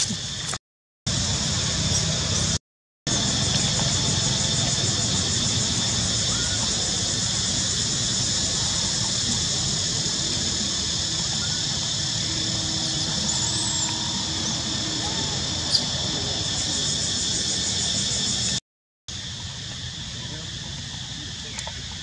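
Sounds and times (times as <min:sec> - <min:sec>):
insects droning: 0:00.0 - 0:22.0.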